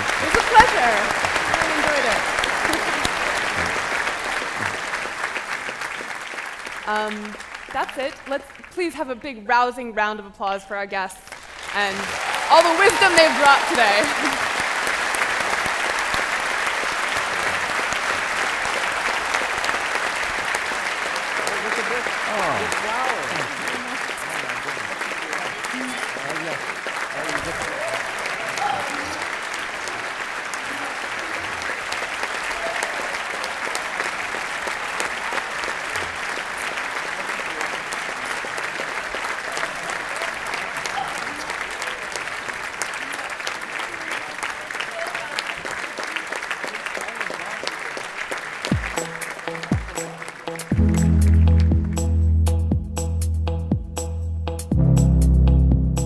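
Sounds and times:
audience applauding: 0:00.0 - 0:09.0, 0:11.3 - 0:52.3.

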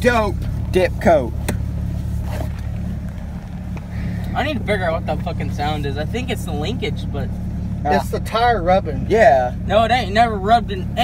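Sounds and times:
truck engine drone in cab: 0:00.0 - 0:11.0
faint rubbing noise: 0:01.8 - 0:05.5.

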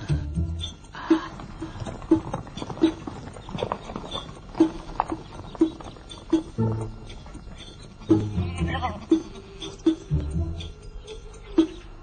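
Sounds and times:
hoofbeats walking: 0:00.1 - 0:11.9.

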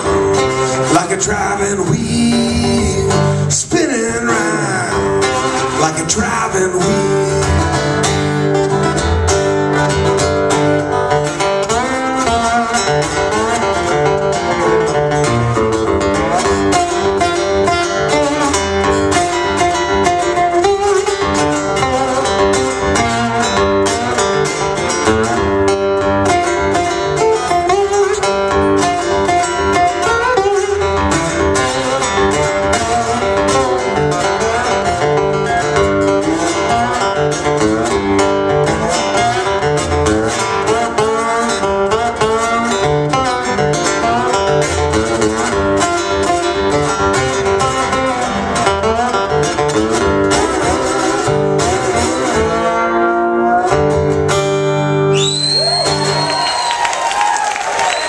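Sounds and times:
acoustic guitars playing: 0:00.0 - 0:58.0.

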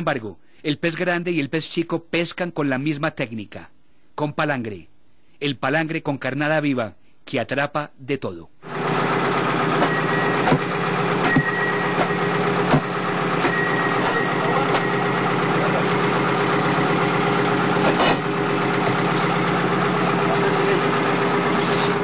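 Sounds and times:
boat engine droning: 0:08.7 - 0:22.0
sharp knocks: 0:09.8 - 0:15.0, 0:17.8 - 0:18.3.

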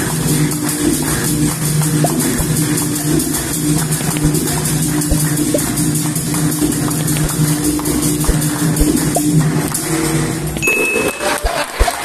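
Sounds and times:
sustained low tones: 0:01.2 - 0:11.6.

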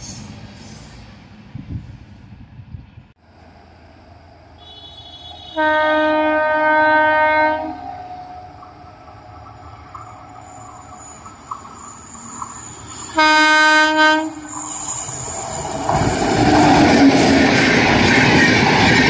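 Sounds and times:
approaching train rumble: 0:00.0 - 0:19.0
locomotive horn blast: 0:04.6 - 0:08.4, 0:13.1 - 0:14.4.

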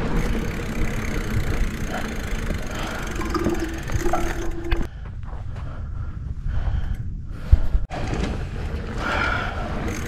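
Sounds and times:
bike rattling over dirt road: 0:00.0 - 0:04.9, 0:07.9 - 0:10.0.

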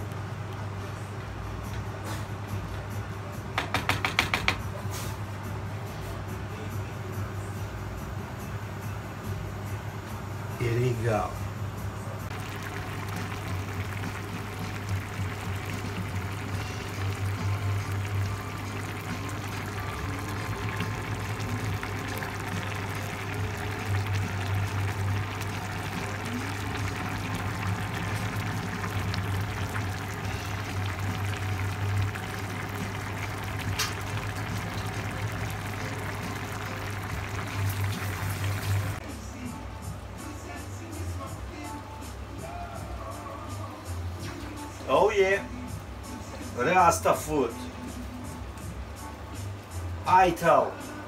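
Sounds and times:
stock bubbling in a pan: 0:12.3 - 0:39.0.

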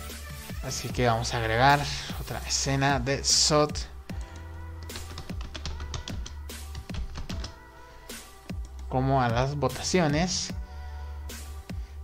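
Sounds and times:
electronic music with bass beat: 0:00.0 - 0:10.7.

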